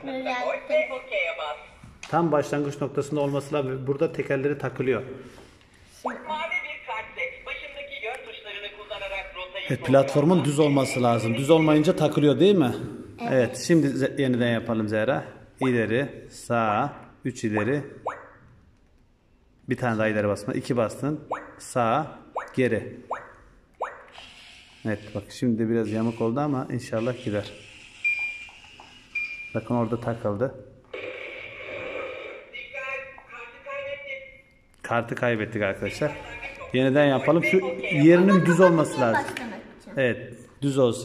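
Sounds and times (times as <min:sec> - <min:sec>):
toy robot bloop tones: 0:27.0 - 0:29.5.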